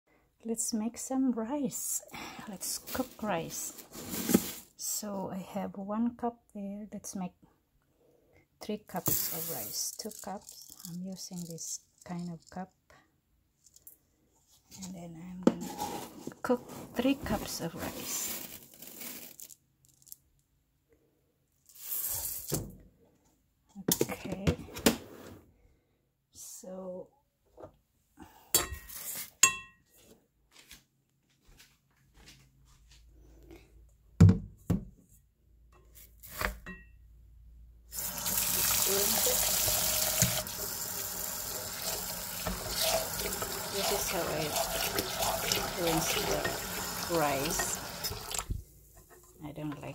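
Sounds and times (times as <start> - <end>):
tap water running into pot: 38.0 - 48.6.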